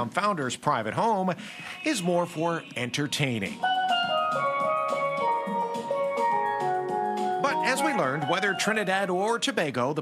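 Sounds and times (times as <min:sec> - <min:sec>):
steel pan melody: 0:01.9 - 0:09.4.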